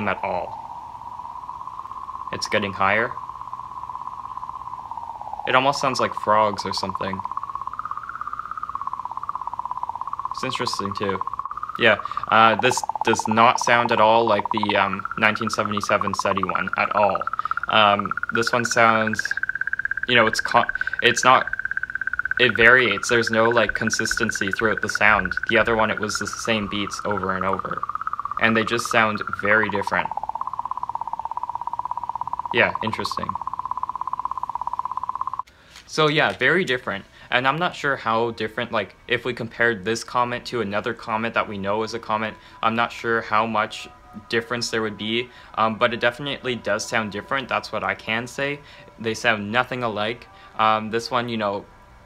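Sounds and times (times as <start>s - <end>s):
rapid pulsing clicking tone: 0.0s - 35.5s, 39.7s - 51.2s.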